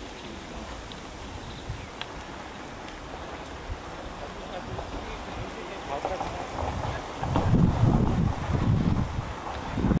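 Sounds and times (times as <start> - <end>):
wind buffeting microphone: 0.6 - 10.0.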